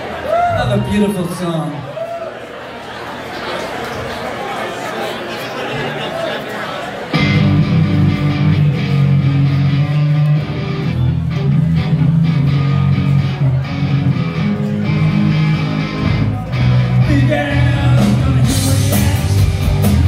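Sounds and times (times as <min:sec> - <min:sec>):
live rock band playing: 0:07.1 - 0:20.0.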